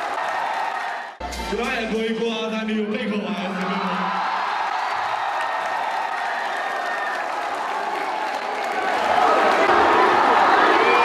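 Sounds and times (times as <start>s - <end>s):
audience applauding: 0.0s - 1.2s, 3.5s - 11.0s
crowd noise: 0.0s - 11.0s.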